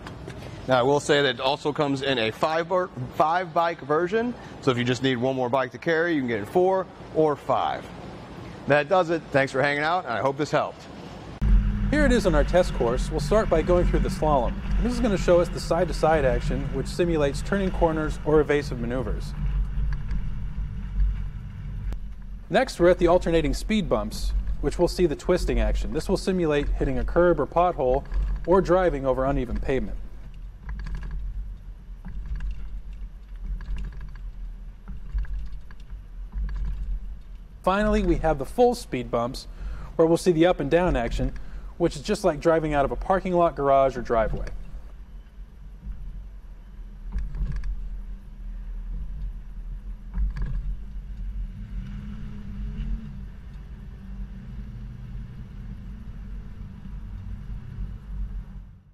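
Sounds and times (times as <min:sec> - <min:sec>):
vehicle rumbling over speed bumps: 0:10.9 - 0:58.9.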